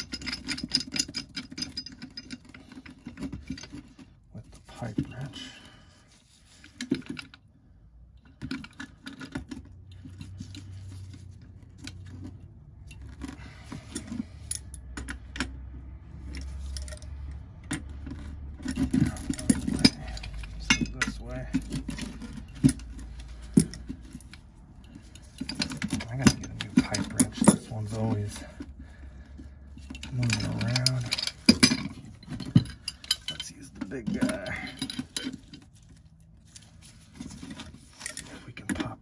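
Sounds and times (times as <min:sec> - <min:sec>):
wrenches clinking on metal: 0:00.0 - 0:07.5, 0:08.2 - 0:39.0.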